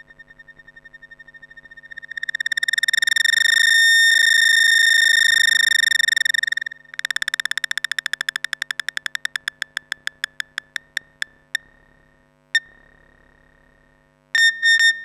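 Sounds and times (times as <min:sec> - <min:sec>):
fast clicking synth pulses: 0:01.1 - 0:04.2, 0:05.0 - 0:11.7.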